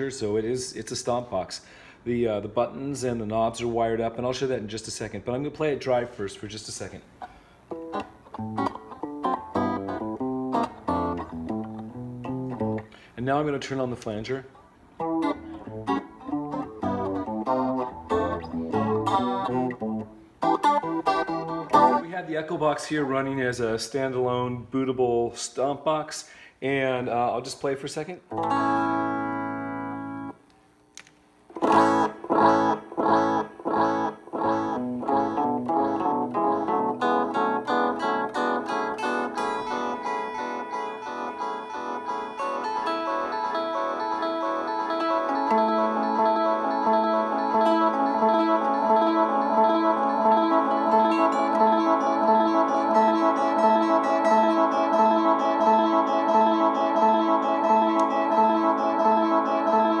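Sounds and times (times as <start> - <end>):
guitar notes with echo effect: 7.7 - 13.0, 15.0 - 22.2, 28.3 - 30.4, 31.6 - 60.0.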